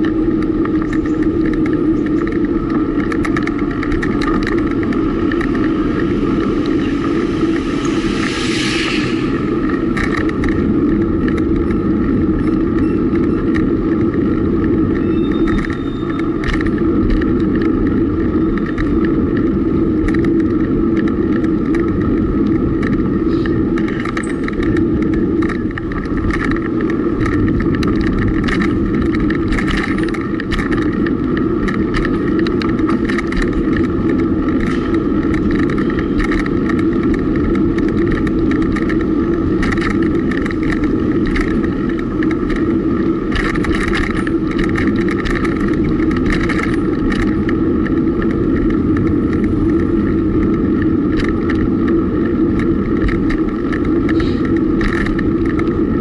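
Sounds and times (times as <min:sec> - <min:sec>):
small clicks and rattles: 0:00.0 - 0:08.6, 0:09.6 - 0:56.0
road noise: 0:00.0 - 0:56.0
wind rumble: 0:00.0 - 0:56.0.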